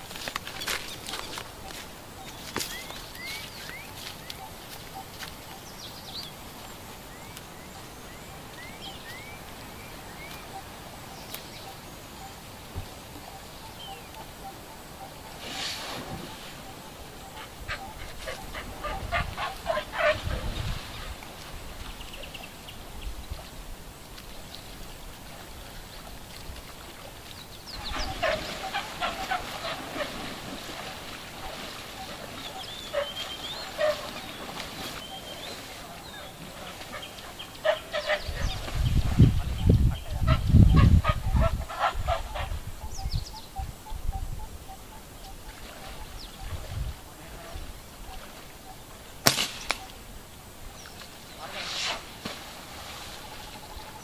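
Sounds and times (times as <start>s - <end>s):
honking animal calls: 13.9s - 20.4s, 27.8s - 30.6s, 31.4s - 35.4s, 36.1s - 38.6s, 40.0s - 42.6s.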